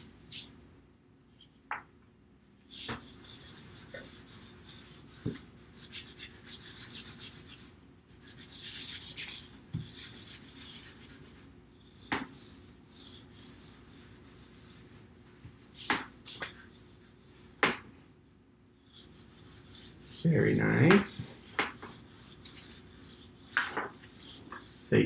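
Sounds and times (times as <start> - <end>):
crayons rasping on paper: 2.7 - 15.0, 18.8 - 24.9.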